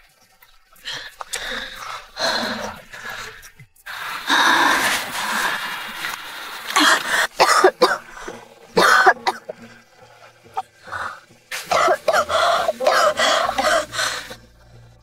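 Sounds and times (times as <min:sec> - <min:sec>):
person coughing hard: 0:06.8 - 0:08.1, 0:08.8 - 0:09.6, 0:11.7 - 0:14.0.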